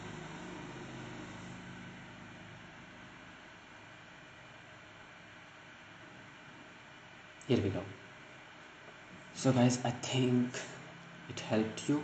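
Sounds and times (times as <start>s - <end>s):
low hum: 0.0s - 3.9s.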